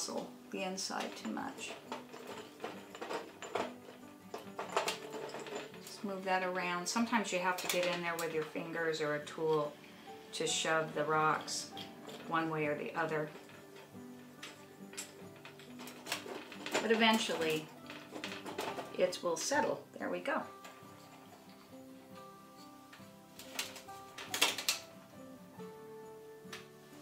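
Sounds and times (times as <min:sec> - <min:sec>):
soft background music: 0:00.0 - 0:27.0
glass and small rocks clicking: 0:01.0 - 0:06.1, 0:07.6 - 0:08.5, 0:13.1 - 0:19.1, 0:20.4 - 0:25.3.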